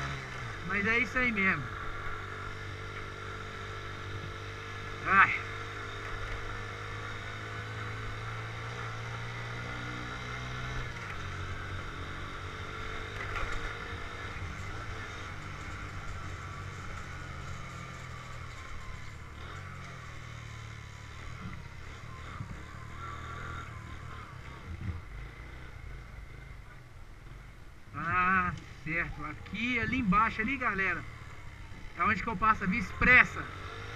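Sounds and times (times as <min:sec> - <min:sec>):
road and wind noise: 0:00.0 - 0:33.9
small motorcycle engine running: 0:00.0 - 0:33.9.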